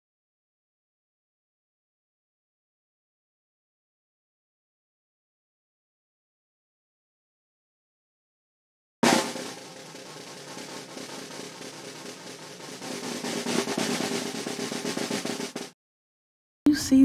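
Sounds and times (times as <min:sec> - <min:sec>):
snare drum roll: 0:09.0 - 0:15.8.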